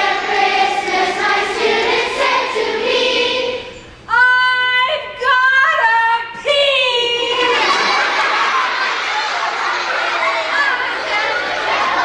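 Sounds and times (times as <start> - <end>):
group singing: 0.0 - 3.9.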